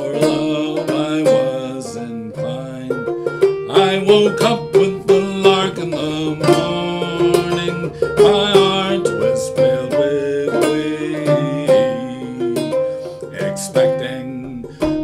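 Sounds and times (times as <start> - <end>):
banjo plucking and strumming: 0.0 - 15.0.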